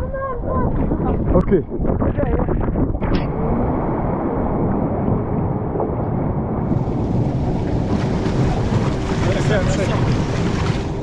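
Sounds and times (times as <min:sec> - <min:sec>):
wind buffeting microphone: 0:00.0 - 0:11.0
water rushing and splashing: 0:03.0 - 0:11.0.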